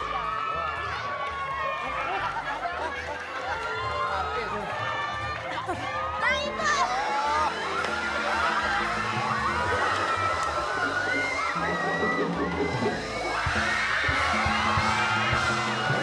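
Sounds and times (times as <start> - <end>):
audience shouting and cheering: 0.0 - 16.0
background music with bass line: 0.0 - 16.0.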